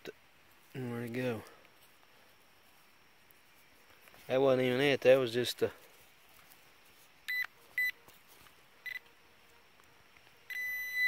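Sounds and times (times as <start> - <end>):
pinpointer high electronic beeps: 7.3 - 8.0, 10.5 - 11.0.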